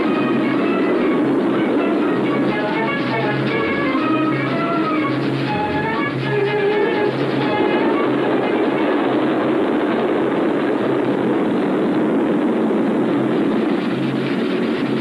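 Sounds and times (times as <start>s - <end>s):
background music: 0.0s - 9.0s
train rumbling and rattling: 0.0s - 15.0s.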